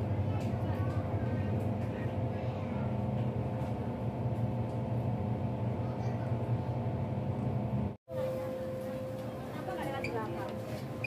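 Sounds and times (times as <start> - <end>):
faint passenger voices: 0.0 - 4.0, 5.6 - 7.0, 8.1 - 11.0
train running hum: 0.0 - 11.0.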